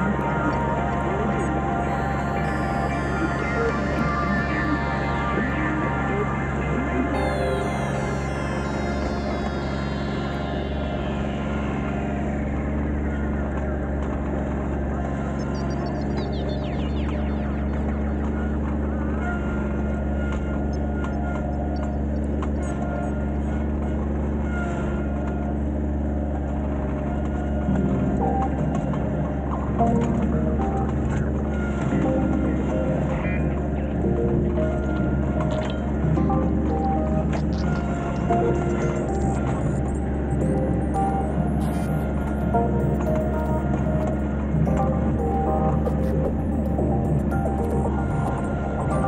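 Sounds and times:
background music: 0.0 - 49.0.

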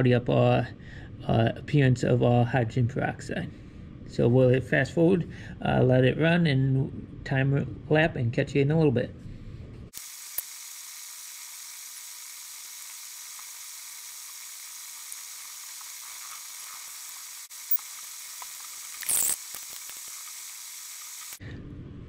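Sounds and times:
high-pitched hiss: 10.0 - 21.4.

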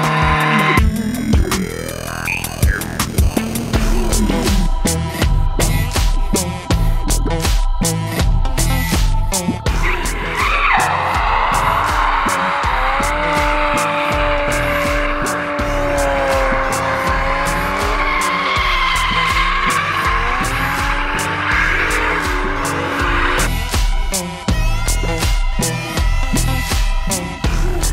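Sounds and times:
background music with steady beat: 0.0 - 27.9
engines running hard: 0.0 - 27.9
tyres squealing: 9.7 - 23.8.

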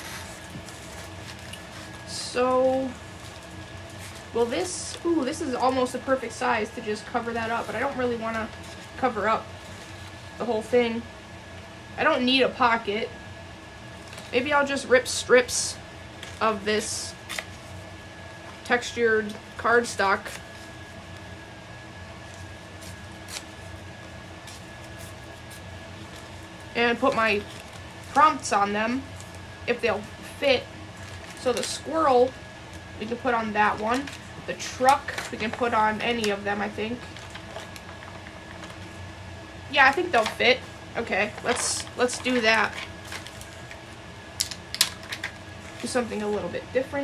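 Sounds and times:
paper crinkling: 0.0 - 6.0, 7.0 - 10.4, 19.3 - 21.4, 22.2 - 31.9, 33.6 - 39.0, 39.9 - 46.0
room hum with high whine: 0.0 - 47.0
person speaking: 4.3 - 9.4, 26.7 - 27.5.

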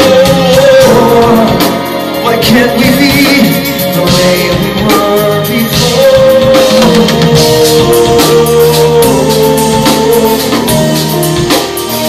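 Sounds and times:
live rock band playing: 0.0 - 12.0
person singing: 0.0 - 12.0.

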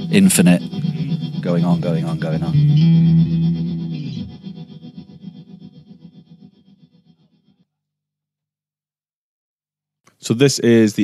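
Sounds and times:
electric guitar chord with reverb: 0.0 - 5.8.

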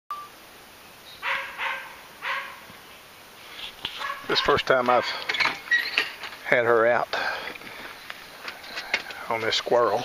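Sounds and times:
puppy barking high-pitched: 1.2 - 2.6, 4.0 - 5.2.

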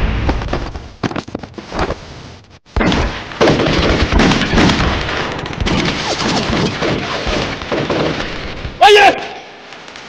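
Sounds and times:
rapid pistol gunfire: 2.8 - 8.6.

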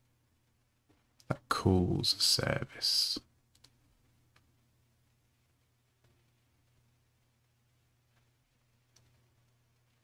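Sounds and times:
low steady hum: 0.0 - 10.0
keyboard or mouse clicks: 3.5 - 3.8.

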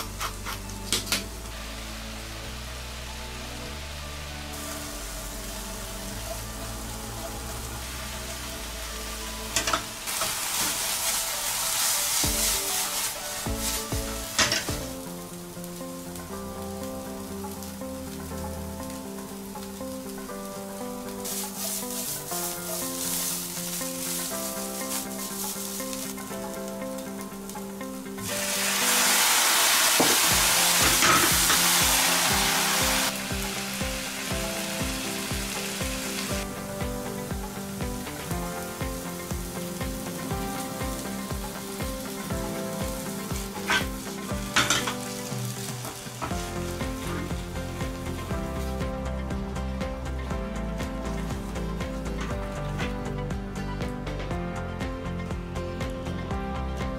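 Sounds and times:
meat sizzling in a frying pan: 0.0 - 54.1
light background music: 0.0 - 56.9.

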